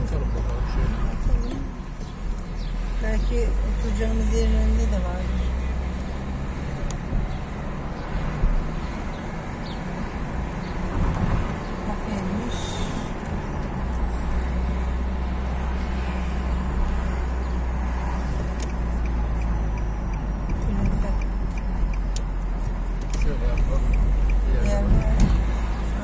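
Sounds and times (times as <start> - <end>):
car engine and tyre rumble: 0.0 - 26.0
light regular ticking: 17.7 - 25.5.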